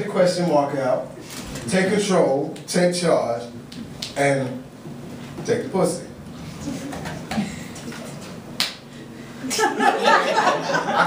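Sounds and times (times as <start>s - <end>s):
finger snap: 3.7s - 4.2s, 8.6s - 8.8s.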